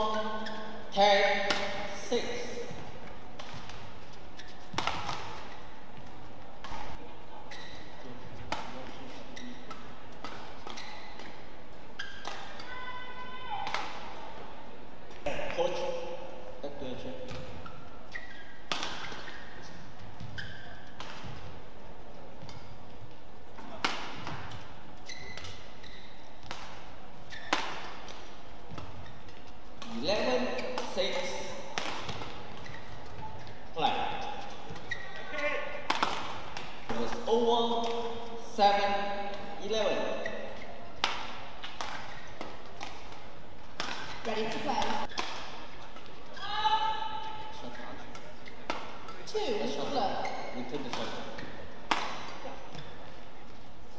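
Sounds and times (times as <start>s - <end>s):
racket striking shuttlecock: 1.2s - 7.6s, 8.4s - 12.8s, 13.5s - 14.2s, 17.2s - 21.6s, 22.4s - 38.3s, 40.9s - 46.2s, 48.1s - 49.3s, 50.7s - 53.0s
short high squeaks: 17.6s - 19.7s, 20.3s - 20.9s, 25.0s - 26.3s, 34.2s - 35.5s.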